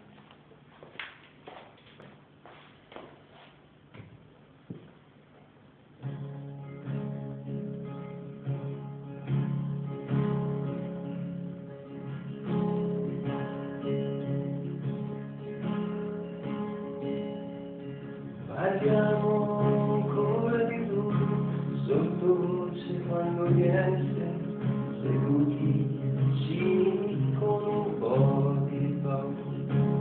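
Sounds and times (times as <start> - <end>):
acoustic guitar chords: 6.0 - 30.0
person singing: 18.5 - 30.0.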